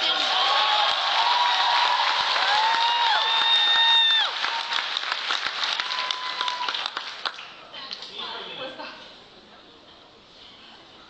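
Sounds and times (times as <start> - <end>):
audience applauding and cheering: 0.0 - 7.6.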